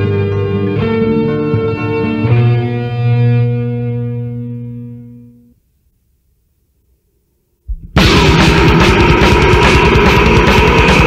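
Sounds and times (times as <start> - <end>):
electric guitar chord ringing: 0.0 - 5.6
metal band hit: 7.7 - 11.0.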